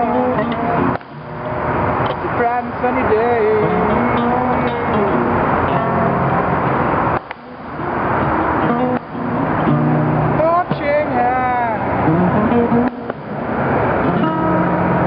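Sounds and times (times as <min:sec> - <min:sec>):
man singing blues: 0:00.0 - 0:01.0, 0:02.1 - 0:06.1, 0:10.3 - 0:12.9
acoustic guitar strumming: 0:00.0 - 0:15.0
highway traffic: 0:00.0 - 0:15.0.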